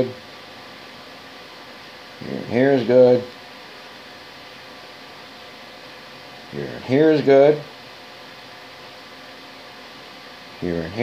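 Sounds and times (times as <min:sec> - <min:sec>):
room background hiss: 0:00.0 - 0:11.0.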